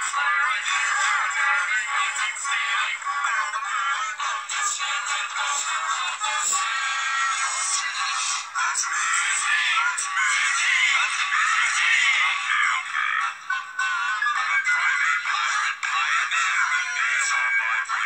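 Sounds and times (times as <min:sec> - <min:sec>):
synthetic-sounding singing over music: 0:00.0 - 0:18.0.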